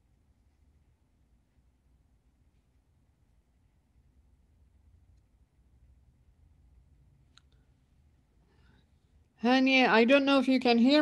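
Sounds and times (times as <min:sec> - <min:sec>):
faint click: 0:07.3 - 0:07.6.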